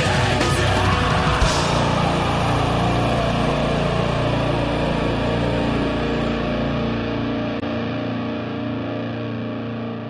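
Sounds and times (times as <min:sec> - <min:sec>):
distorted electric guitars: 0:00.0 - 0:10.0
low drone: 0:00.0 - 0:10.0.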